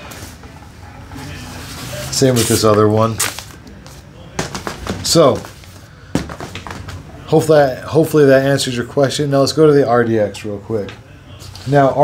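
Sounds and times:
boxing gloves knocking and rustling: 4.4 - 7.1.

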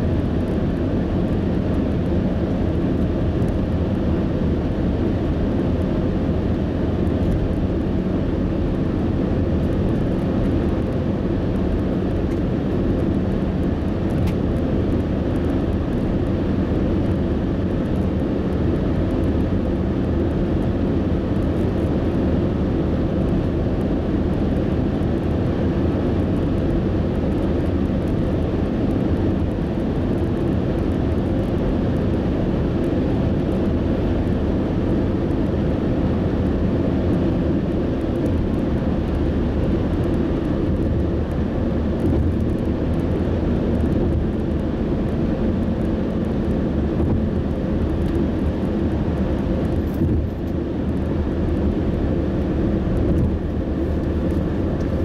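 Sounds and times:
car engine drone: 0.0 - 55.0
tyre roar on pavement: 0.0 - 55.0.

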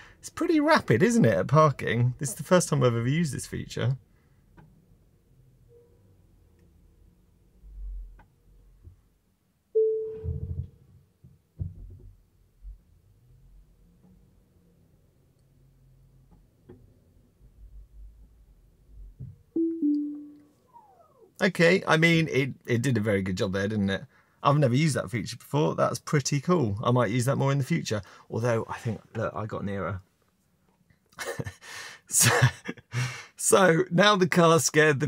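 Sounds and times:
faint low rumble: 6.2 - 9.2, 17.0 - 21.2.

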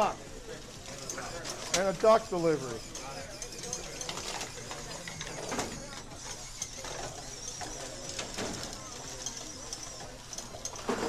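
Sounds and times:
murmur of voices: 0.0 - 11.0
robot motors clicking and rattling: 2.8 - 11.0.

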